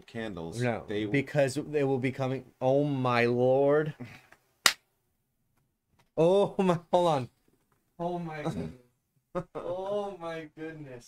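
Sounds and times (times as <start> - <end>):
person speaking: 8.0 - 8.8.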